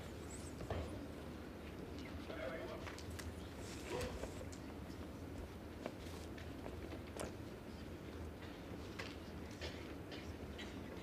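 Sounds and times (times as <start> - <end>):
indoor arena ambience: 0.0 - 11.0.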